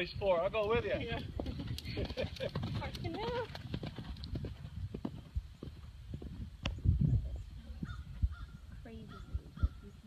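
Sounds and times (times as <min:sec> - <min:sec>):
horse hoofbeats cantering: 0:00.6 - 0:06.5.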